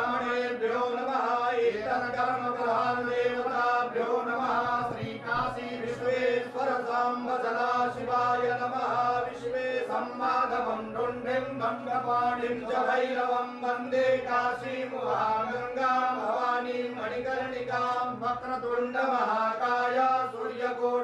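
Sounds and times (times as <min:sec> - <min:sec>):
priests chanting mantras: 0:00.0 - 0:21.0.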